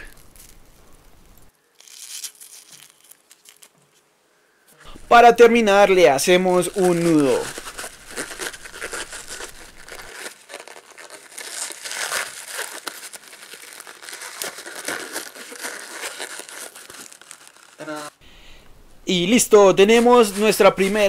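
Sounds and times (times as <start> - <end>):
balloon clicks and rustles: 6.6 - 18.2.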